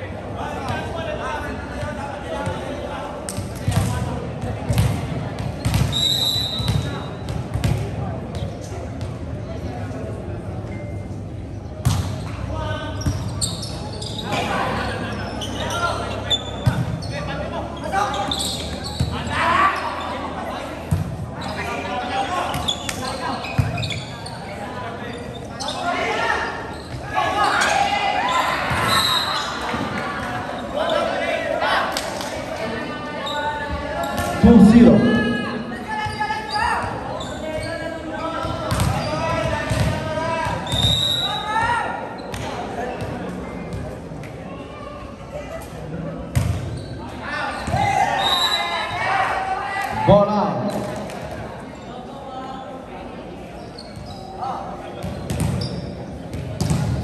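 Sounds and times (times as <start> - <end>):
players and spectators shouting: 25.1 - 32.0, 32.7 - 42.2, 47.2 - 50.6.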